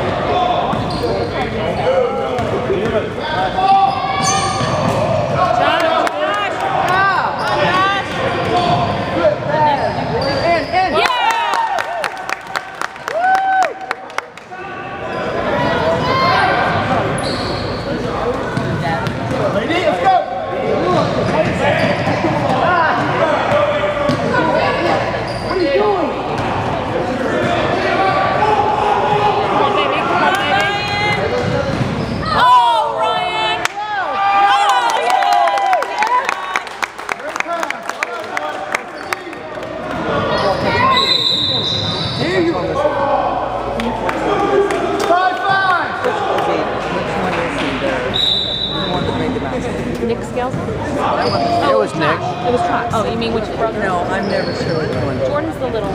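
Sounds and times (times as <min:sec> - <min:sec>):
sneakers squeaking: 0:00.6 - 0:05.4, 0:07.3 - 0:11.0, 0:14.9 - 0:20.0, 0:20.8 - 0:26.7, 0:30.3 - 0:32.6, 0:40.2 - 0:42.6, 0:48.0 - 0:49.4, 0:50.4 - 0:52.2, 0:53.8 - 0:55.9.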